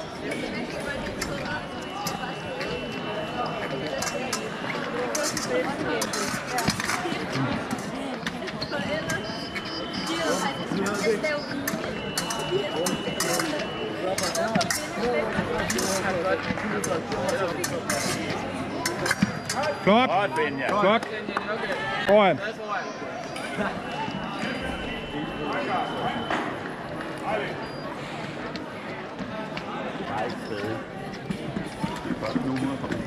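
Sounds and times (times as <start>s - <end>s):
hall full of voices: 0.0s - 33.0s.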